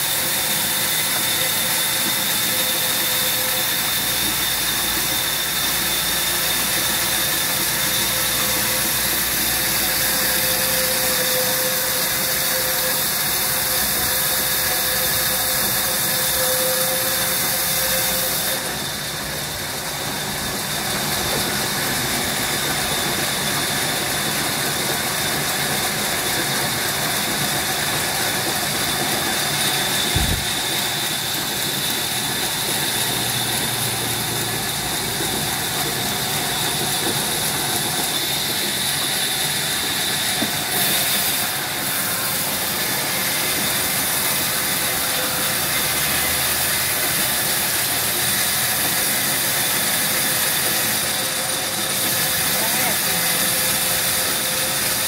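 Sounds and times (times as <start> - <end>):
band saw cutting timber: 0.0 - 55.0.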